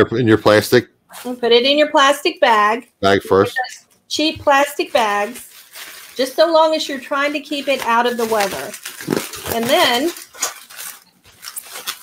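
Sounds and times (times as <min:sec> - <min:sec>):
bubble wrap crinkling: 0:01.1 - 0:01.5, 0:04.5 - 0:12.0.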